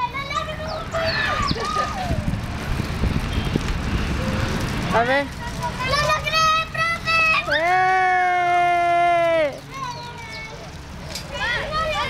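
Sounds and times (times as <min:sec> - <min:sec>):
wind buffeting microphone: 0:00.3 - 0:06.7.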